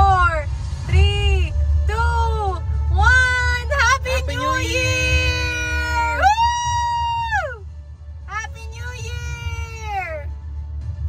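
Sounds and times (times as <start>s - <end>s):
low car rumble: 0.0s - 11.0s
voices cheering woo: 4.4s - 7.7s.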